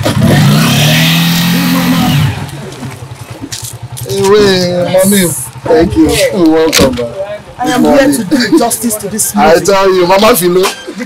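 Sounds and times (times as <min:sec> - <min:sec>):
vehicle engine accelerating: 0:00.0 - 0:06.8.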